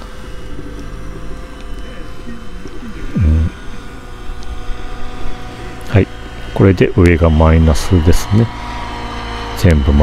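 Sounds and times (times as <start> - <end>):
faint whining tones: 0.0 - 10.0
low hum and rumble: 0.0 - 10.0.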